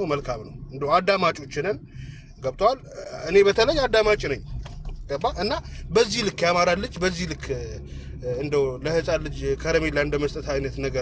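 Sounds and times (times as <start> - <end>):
man talking: 0.0 - 4.4, 5.0 - 11.0.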